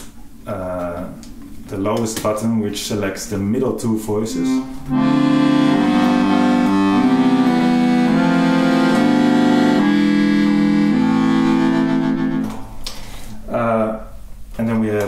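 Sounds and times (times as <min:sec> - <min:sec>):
accordion bass notes and chords: 0:04.2 - 0:13.0.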